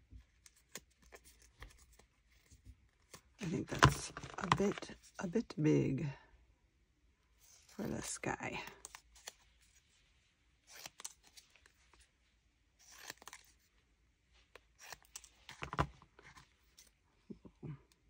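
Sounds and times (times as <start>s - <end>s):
scissors snipping paper: 10.7s - 11.4s, 12.8s - 13.6s.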